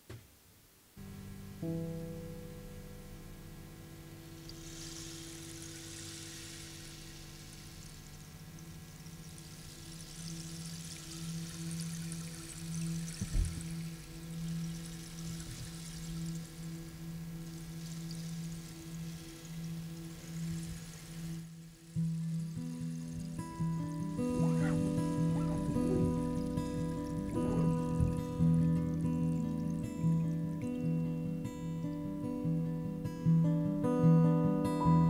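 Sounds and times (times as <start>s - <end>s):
shimmering cymbal wash: 1.0s - 35.0s
low thump: 13.2s - 13.6s
held low pulsing note: 22.0s - 31.1s.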